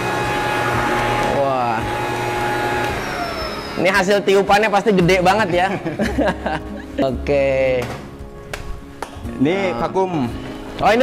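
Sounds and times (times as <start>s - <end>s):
leaf blower motor whine: 0.0s - 3.9s.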